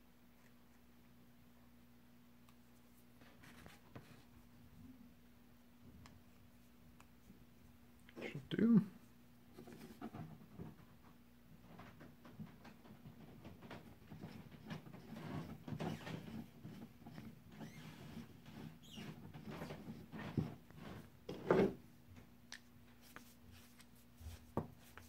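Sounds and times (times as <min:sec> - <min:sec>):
threaded rod scraping in wood: 0:14.1 - 0:21.7.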